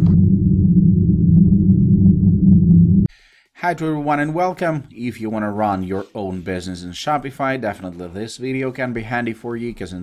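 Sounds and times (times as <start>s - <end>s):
low bass drone: 0.0s - 3.1s.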